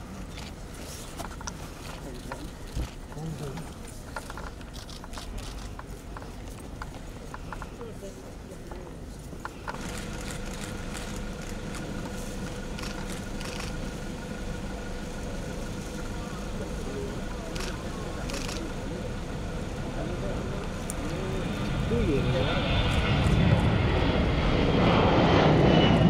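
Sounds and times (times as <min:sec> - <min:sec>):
jet engine hum with high whine: 0:00.0 - 0:26.0
low indistinct voices: 0:01.7 - 0:25.8.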